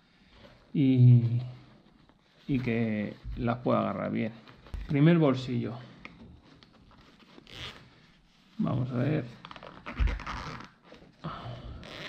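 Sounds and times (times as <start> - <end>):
backpack zipper opening: 9.7 - 10.8.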